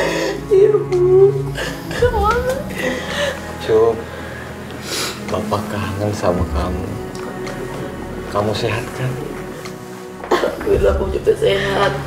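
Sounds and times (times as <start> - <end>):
boy sobbing: 0.4 - 3.1.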